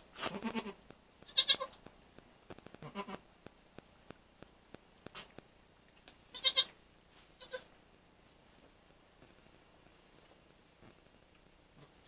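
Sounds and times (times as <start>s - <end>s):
goat bleating: 0.2s - 1.8s, 2.8s - 3.2s, 6.3s - 6.8s, 7.4s - 7.7s.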